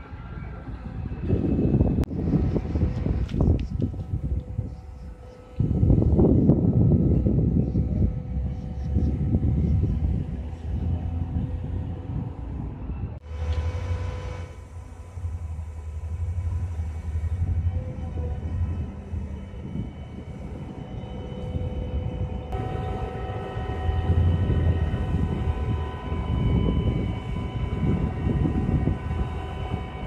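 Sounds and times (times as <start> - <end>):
crane diesel engine rumbling: 0.0 - 30.0.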